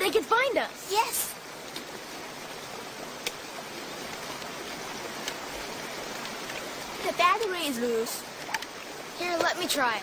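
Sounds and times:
river rushing over rocks: 0.0 - 10.0.

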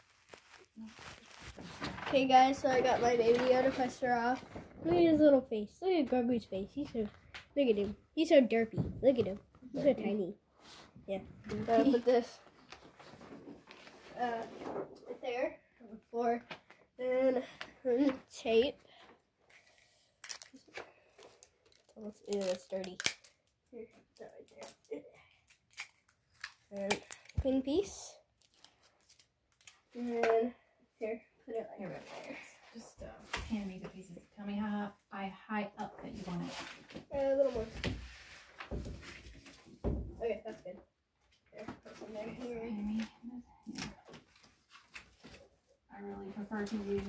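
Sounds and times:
tape tearing and crinkling: 0.0 - 2.0, 20.2 - 23.6, 24.2 - 27.5, 28.4 - 30.0
paper poster rustling: 0.0 - 5.4, 6.0 - 15.5, 19.5 - 23.3, 31.5 - 34.3, 35.8 - 40.6, 41.5 - 47.0.

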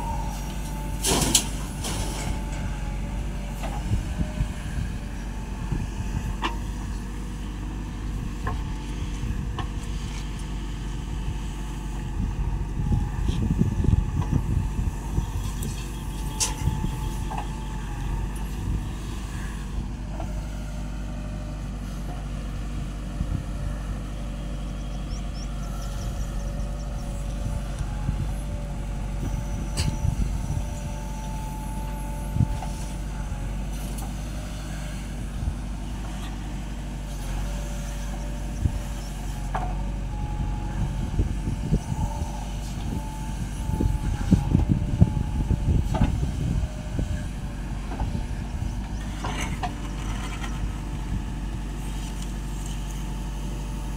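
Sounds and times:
backhoe diesel engine running: 0.0 - 53.9.

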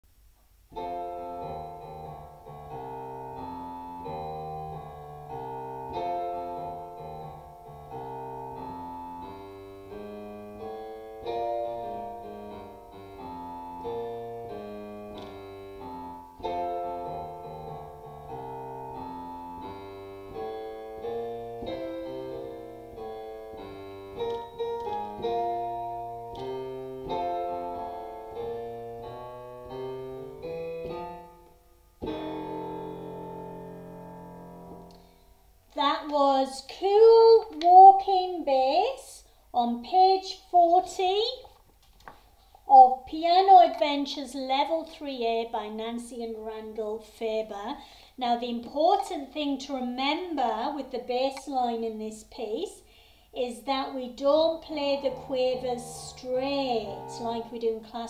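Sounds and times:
piano jazz walking bass line: 0.4 - 35.2, 53.9 - 58.0
piano chords: 0.6 - 35.8, 53.9 - 58.0.

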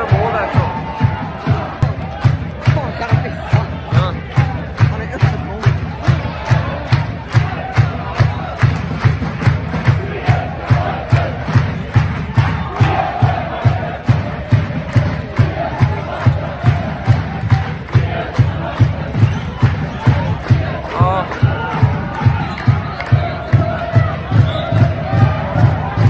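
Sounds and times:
crowd chanting: 0.0 - 26.0
heavy drumbeat: 0.0 - 26.0.

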